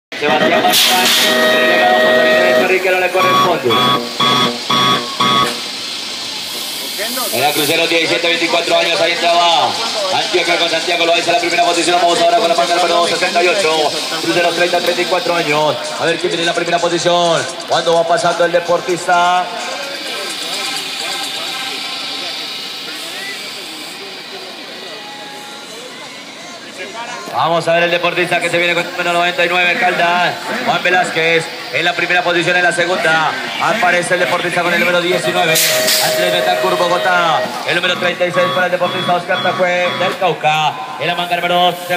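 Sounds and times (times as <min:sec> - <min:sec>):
short electronic beeps: 0:00.4 - 0:05.7, 0:35.1 - 0:41.0
crowd shouting and cheering: 0:08.7 - 0:41.3.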